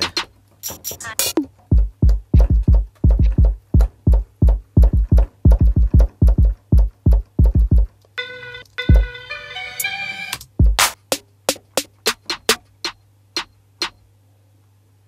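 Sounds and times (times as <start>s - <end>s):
sampled melodic loop: 0.0s - 14.1s
electronic kick drum hits: 1.7s - 7.9s, 8.9s - 9.1s, 10.6s - 10.9s.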